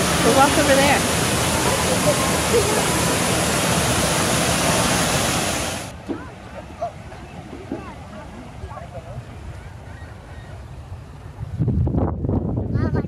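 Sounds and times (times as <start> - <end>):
waterfall rushing over rocks: 0.0 - 9.5.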